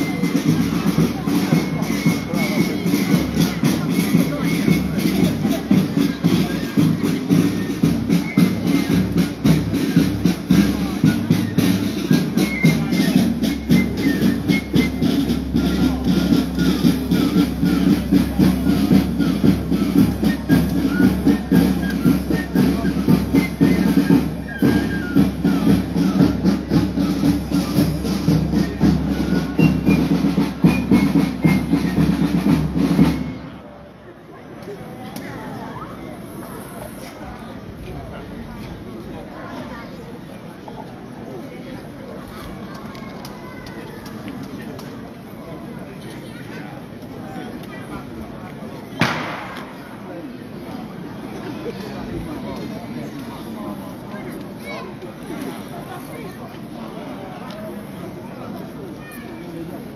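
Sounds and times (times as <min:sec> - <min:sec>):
wind band playing a march: 0:00.0 - 0:33.5.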